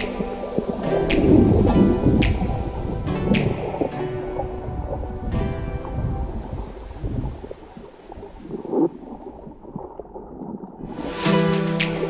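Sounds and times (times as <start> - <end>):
bubbles gurgling: 0.1 - 11.1
muffled underwater water rumble: 0.2 - 11.1.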